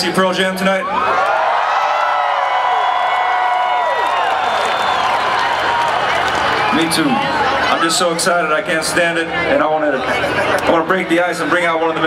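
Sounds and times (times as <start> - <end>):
crowd cheering and screaming: 0.8 - 8.2.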